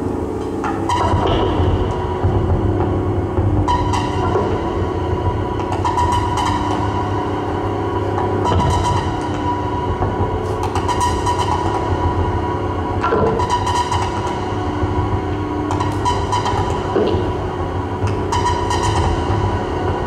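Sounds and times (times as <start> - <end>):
modular synthesizer drone: 0.0 - 20.0.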